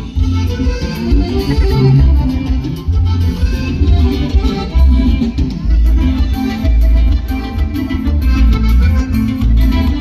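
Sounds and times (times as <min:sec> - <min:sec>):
live dance band music: 0:00.0 - 0:10.0
heavy pulsing bass beat: 0:00.1 - 0:06.5.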